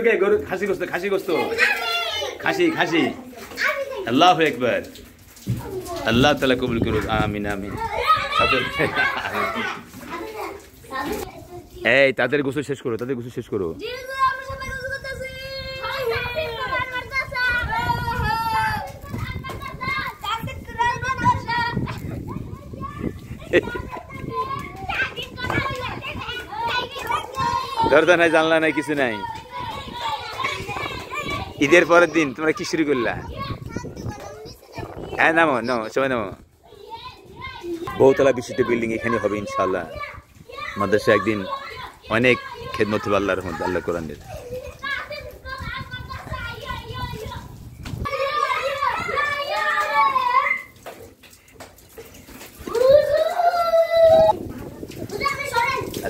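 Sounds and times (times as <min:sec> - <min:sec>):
boys shouting: 0:00.0 - 0:04.2, 0:07.5 - 0:11.2, 0:13.8 - 0:36.0, 0:36.6 - 0:50.8, 0:52.6 - 0:54.4
drawn-out falling shout: 0:44.8 - 0:50.8, 0:52.7 - 0:54.4.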